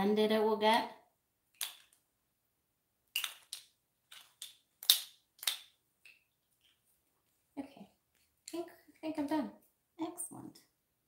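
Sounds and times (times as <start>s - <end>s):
small hard objects clicking: 1.5s - 2.0s, 3.1s - 6.8s.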